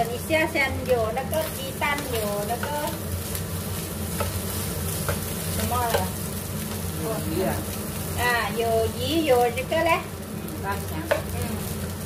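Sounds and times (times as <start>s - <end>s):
rice sizzling: 0.0s - 12.0s
steady low hum: 0.0s - 12.0s.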